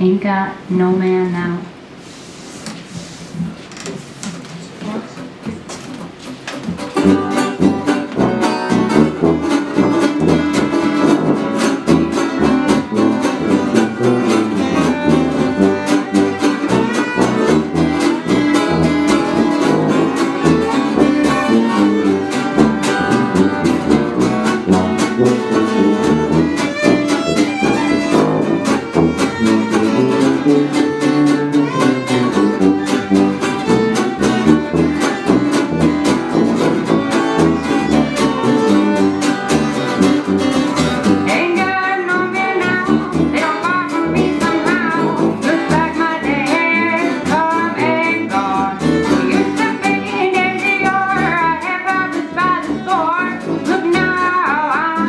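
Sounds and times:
acoustic jazz band playing: 1.9 - 55.0
strummed guitar beat: 4.2 - 55.0.

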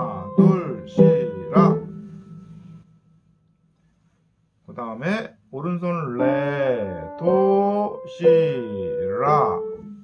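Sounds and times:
piano notes and chords: 0.0 - 2.8, 6.2 - 10.0.

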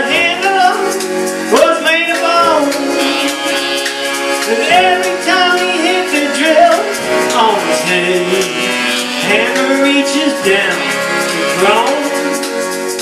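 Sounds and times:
folk-blues band playing: 0.0 - 13.0
sliding wavering melody line: 0.0 - 13.0.

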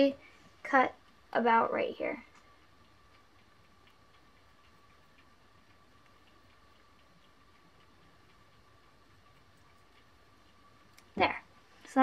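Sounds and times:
faint light ticks: 0.0 - 12.0
faint steady hum: 0.0 - 12.0.

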